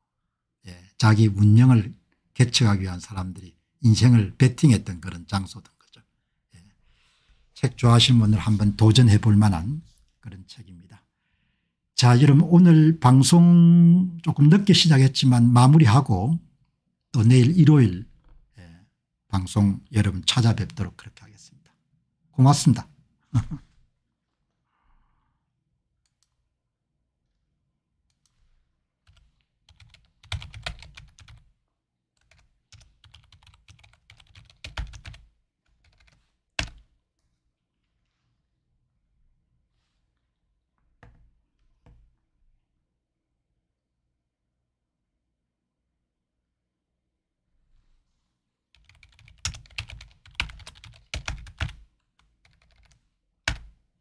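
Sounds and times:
computer keyboard typing: 29.0s - 31.5s, 32.2s - 36.9s, 48.7s - 53.7s.

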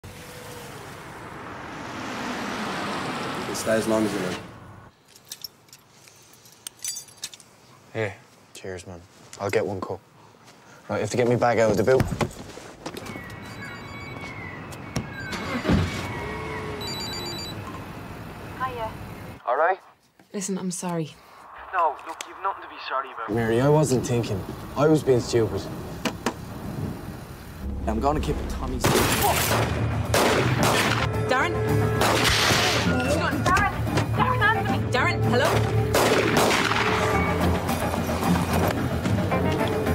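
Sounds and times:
light metallic clinks: 5.0s - 7.5s.

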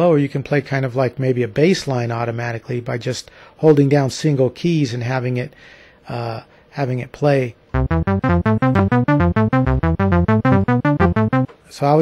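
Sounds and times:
arpeggiated synth bass line: 7.8s - 11.5s.

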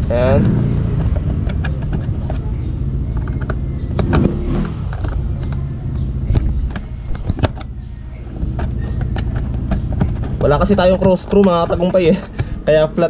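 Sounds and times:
low engine hum: 0.0s - 13.0s
sharp clicks: 0.4s - 7.8s.

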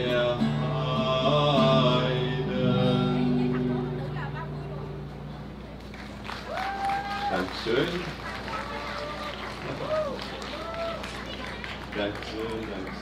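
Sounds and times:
steady low hum: 0.0s - 6.6s
people talking: 2.8s - 5.8s, 7.3s - 13.0s.

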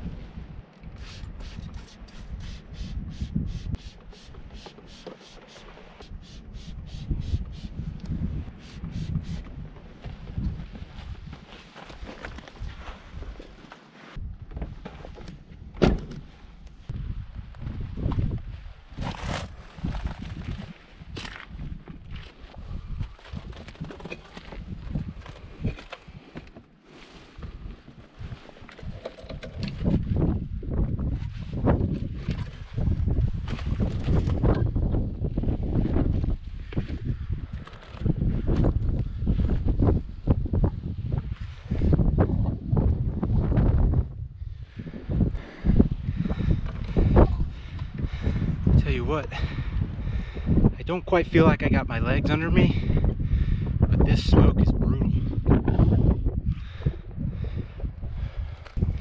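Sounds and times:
wind buffeting microphone: 0.0s - 4.7s, 6.0s - 13.4s, 14.2s - 26.5s, 27.3s - 59.0s
footsteps on rocky ground: 9.4s - 15.6s.

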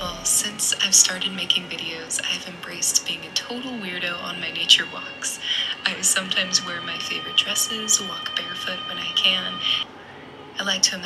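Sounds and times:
woman speaking softly: 0.0s - 9.9s, 10.6s - 11.0s.

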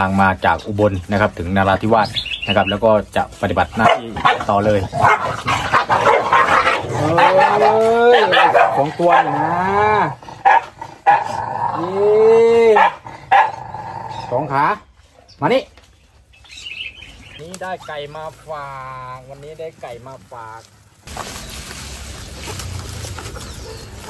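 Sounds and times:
dogs yelping: 3.7s - 15.3s, 22.4s - 24.0s
dogs whining and howling: 3.9s - 14.5s, 23.2s - 24.0s.

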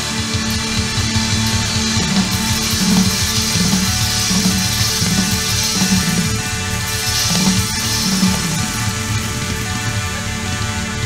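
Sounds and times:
drums: 0.0s - 11.0s
bass line: 0.2s - 11.0s.

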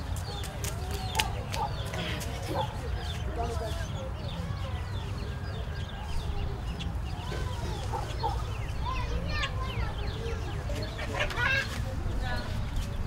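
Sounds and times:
indistinct voices and children: 0.0s - 13.0s
chickens clucking: 0.2s - 4.7s, 5.6s - 12.9s.

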